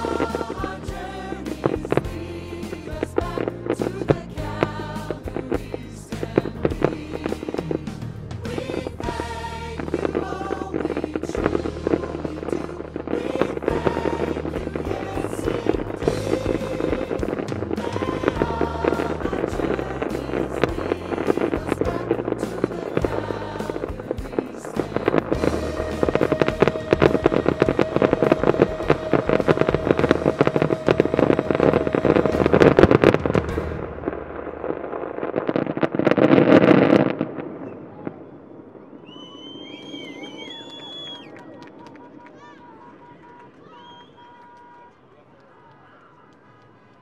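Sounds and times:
high firework whistles: 0.0 - 1.9, 22.2 - 44.8
music soundtrack: 0.0 - 37.5
fireworks crackling and banging: 0.0 - 47.0.

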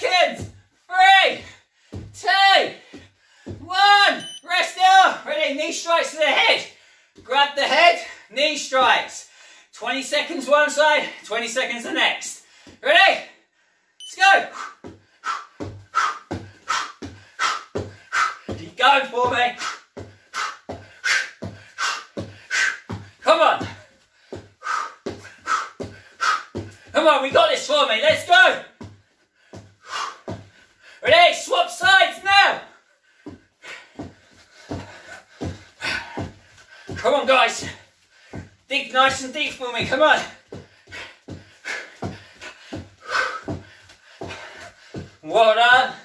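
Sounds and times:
bare feet thudding on wooden floor: 1.3 - 3.7, 14.6 - 27.6, 33.2 - 45.2
person speaking: 3.6 - 9.2, 14.0 - 14.6, 18.5 - 19.6, 26.9 - 28.7, 31.0 - 32.7, 36.9 - 37.8, 38.7 - 40.4
sharp exhaled breaths: 13.4 - 18.5, 19.6 - 23.2, 23.9 - 26.9, 29.2 - 31.0, 32.8 - 37.0, 40.6 - 45.2.

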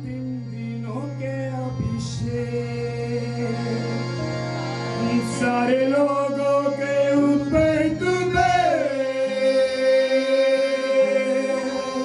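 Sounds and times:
man singing into microphone: 0.0 - 4.3, 5.0 - 12.0
harmonium drone: 0.0 - 12.0.

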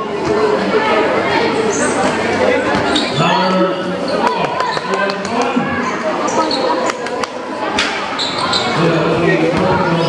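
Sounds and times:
voices of players and spectators: 0.0 - 10.0.

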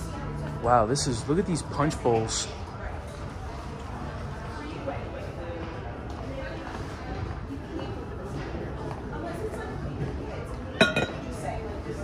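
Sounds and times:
glassware clinking: 10.8 - 11.4.

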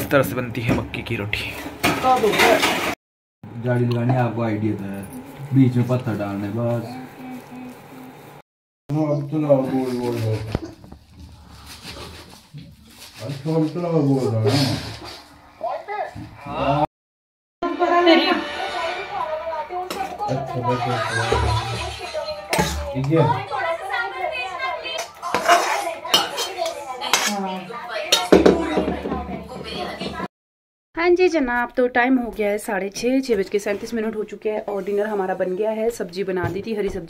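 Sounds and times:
metal utensil scraping pan: 25.2 - 28.4.

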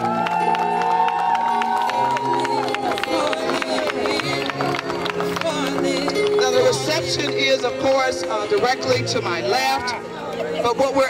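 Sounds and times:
crowd cheering and clapping: 0.0 - 7.9
music playing: 0.0 - 11.0.

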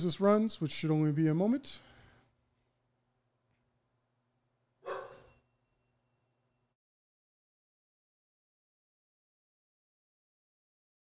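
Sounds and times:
breath out close to microphone: 1.8 - 2.3.

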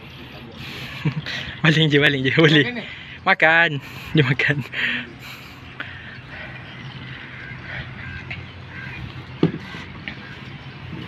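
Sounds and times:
bird calling: 3.8 - 11.0.

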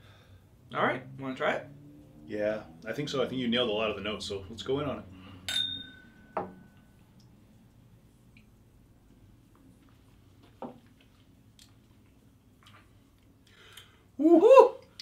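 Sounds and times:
glasses clinking: 5.5 - 6.9.

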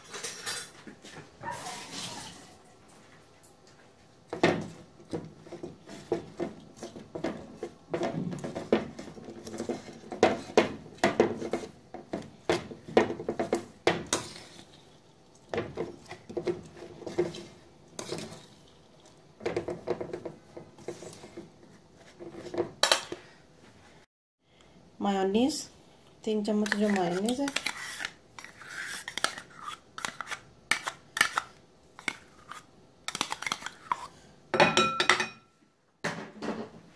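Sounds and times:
spatula scraping metal bowl: 4.6 - 15.0, 15.6 - 22.8, 26.6 - 34.2.

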